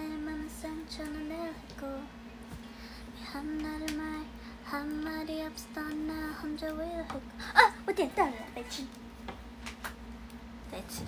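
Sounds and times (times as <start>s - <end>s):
woman singing softly: 0.0s - 2.2s, 3.1s - 7.4s
steady low hum: 0.0s - 11.0s.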